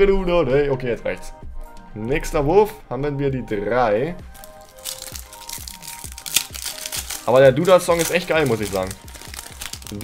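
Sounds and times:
background music: 0.0 - 10.0
foil pack crinkling: 4.3 - 10.0.

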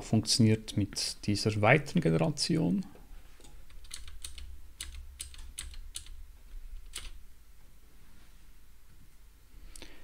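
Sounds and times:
low steady hum: 0.0 - 10.0
keyboard keys clicking: 3.4 - 6.2, 6.8 - 7.2.

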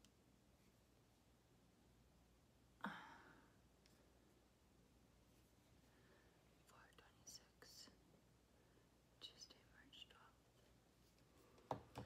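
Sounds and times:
faint whispering: 6.6 - 8.2, 9.1 - 10.8.

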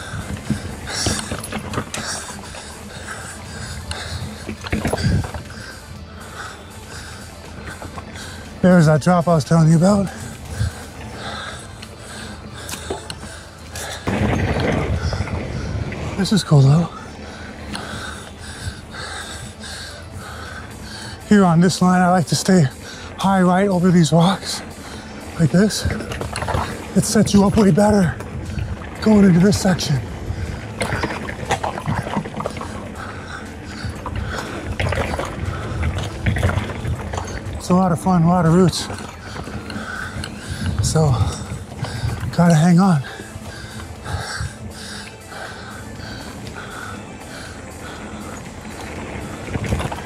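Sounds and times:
mountain bike tyres on dirt trail: 0.0 - 50.0.

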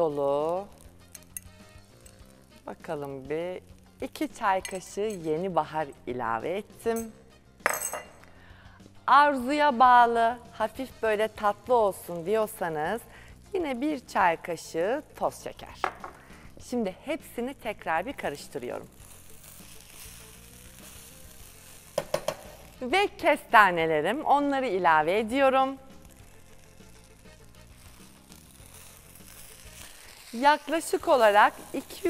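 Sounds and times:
rice sizzling in a pot: 0.0 - 6.8, 10.0 - 16.5, 17.1 - 32.0
spoon clinking against bowl: 4.6 - 5.2, 7.7 - 8.2.

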